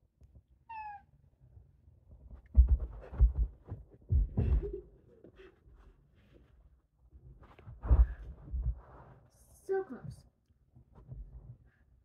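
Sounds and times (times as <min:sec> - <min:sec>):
cat meowing: 0:00.7 - 0:01.1.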